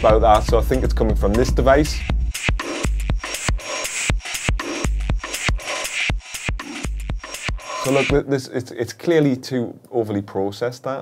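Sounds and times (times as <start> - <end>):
compressed electronic drum loop: 0.0 - 8.3.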